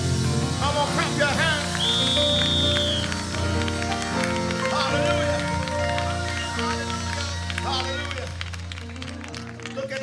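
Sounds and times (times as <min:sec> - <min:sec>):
live gospel band music: 0:00.0 - 0:10.0
choir clapping along: 0:01.6 - 0:10.0.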